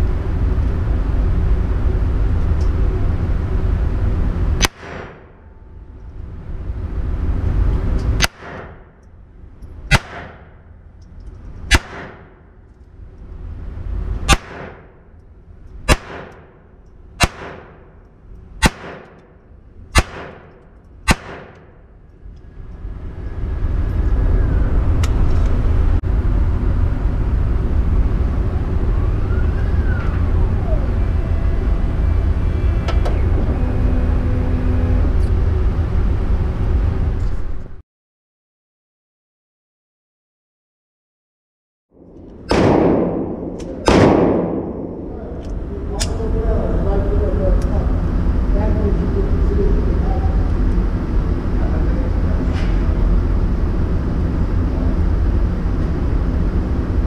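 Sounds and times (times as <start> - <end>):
loud steady low rumble: 0.0 - 37.8, 41.9 - 57.0
pistol shots echoing indoors: 8.2 - 8.9, 9.9 - 10.7, 11.7 - 12.5, 14.3 - 15.0, 15.8 - 18.0, 18.6 - 21.9, 42.1 - 46.2.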